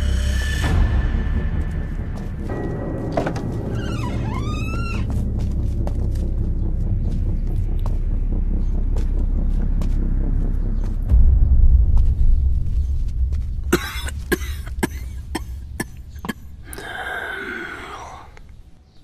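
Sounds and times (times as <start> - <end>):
low rumble: 0.0 - 16.7
person coughing: 13.7 - 16.9.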